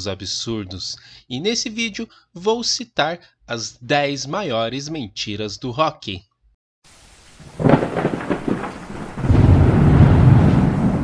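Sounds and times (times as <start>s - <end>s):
rain hiss: 6.8s - 11.0s
crackling thunderclap: 7.2s - 11.0s
deep thunder rumble: 7.4s - 11.0s.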